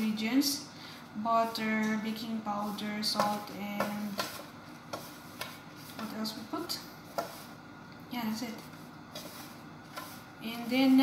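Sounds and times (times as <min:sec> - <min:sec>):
fingers rubbing flour in bowl: 0:01.4 - 0:06.5, 0:07.1 - 0:07.6, 0:08.5 - 0:11.0.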